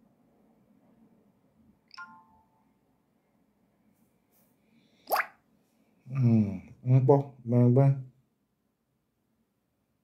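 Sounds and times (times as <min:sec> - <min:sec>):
man saying mm-hmm: 0:06.1 - 0:07.1.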